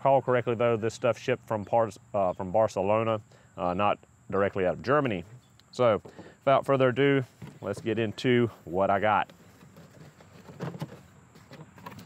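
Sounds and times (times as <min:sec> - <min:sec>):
cardboard scraping and rustling: 0:07.2 - 0:08.2, 0:08.8 - 0:12.0.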